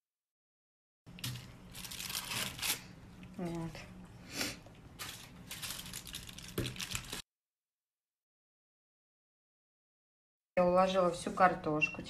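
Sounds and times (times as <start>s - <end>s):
gloved hands rustling and crinkling foil: 1.2s - 3.7s, 4.9s - 7.2s.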